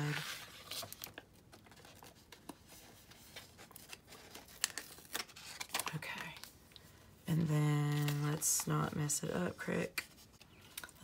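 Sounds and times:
paper sticker sheet crinkling: 0.0 - 6.5, 7.8 - 9.1.

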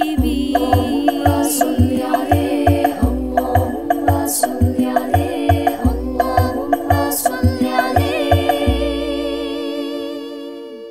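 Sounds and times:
deep drum hits: 0.0 - 9.4
women singing devotional song: 0.0 - 10.9.

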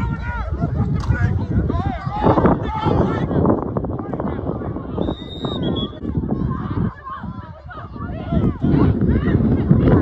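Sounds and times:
crowd voices and shouting: 0.0 - 10.0.

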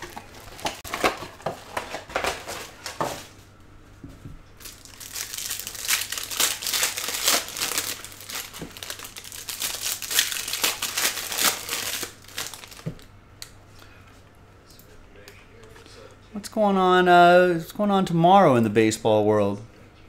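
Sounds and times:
foil wrapper crinkling and tearing: 0.0 - 3.0, 4.6 - 13.1.

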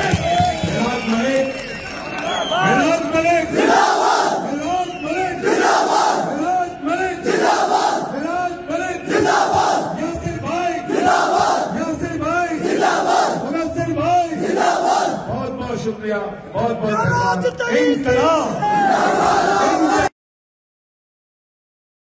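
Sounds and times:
crowd of men shouting: 3.4 - 15.3, 17.8 - 20.1.

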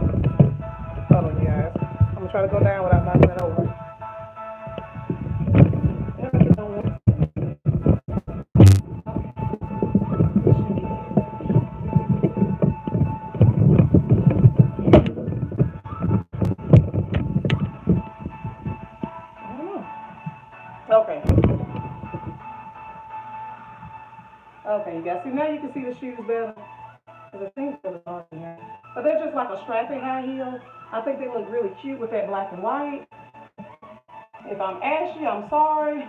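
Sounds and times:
background music: 0.0 - 36.0
phone handling bumps and clicks: 8.6 - 8.8
sharp knock: 8.6 - 8.8.

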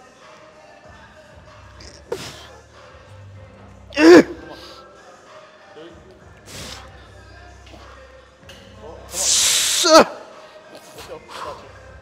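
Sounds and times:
man grunting: 4.0 - 4.7.

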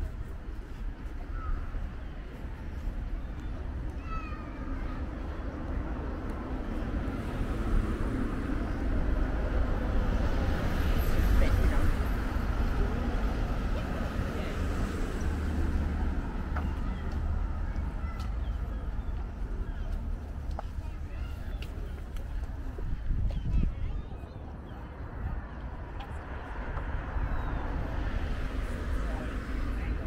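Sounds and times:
murmur of voices: 7.6 - 30.0.

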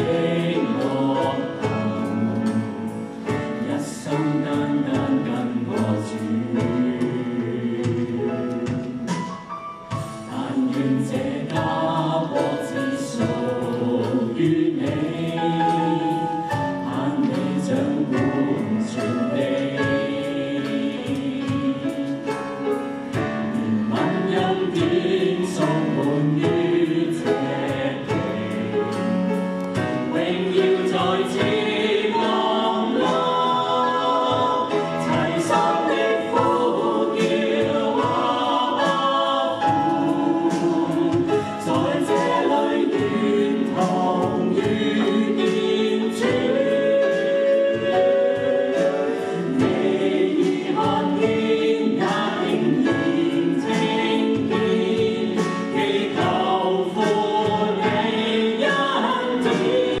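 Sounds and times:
group singing worship song: 0.0 - 60.0
live band accompaniment: 0.0 - 60.0.

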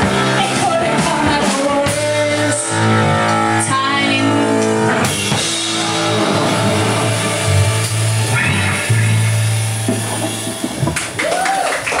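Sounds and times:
keyboard: 0.0 - 11.0
drum kit: 0.0 - 12.0
electric guitar: 0.0 - 12.0
drum and cymbal hits: 4.6 - 11.6.

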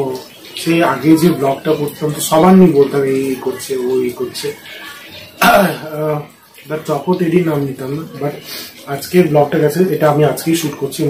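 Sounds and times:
man speaking: 0.0 - 4.6, 5.4 - 11.0.

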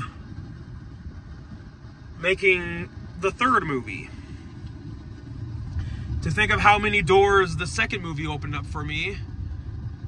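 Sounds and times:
low vehicle rumble: 0.0 - 10.0.

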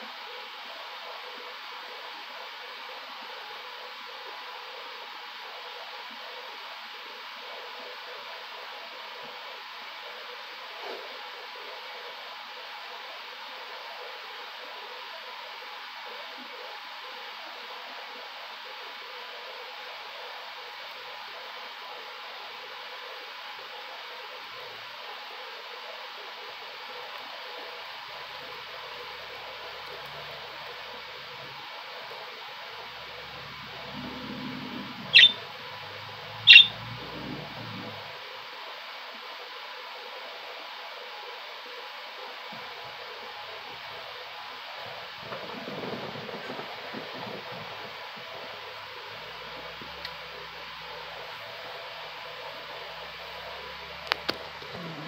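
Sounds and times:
budgerigar chirps: 35.0 - 35.5, 36.4 - 37.0.

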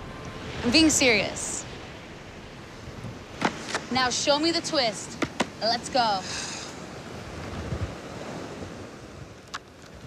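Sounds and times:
ocean surf washing onto beach: 0.0 - 10.0
wind rumbling on microphone: 0.0 - 10.0.

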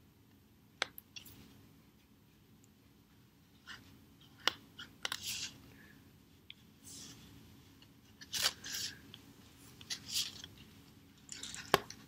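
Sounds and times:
marker strokes on paper plate: 4.8 - 5.6.

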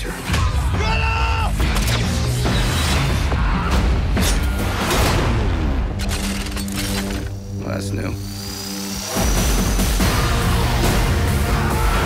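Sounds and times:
action trailer music: 0.0 - 12.0.

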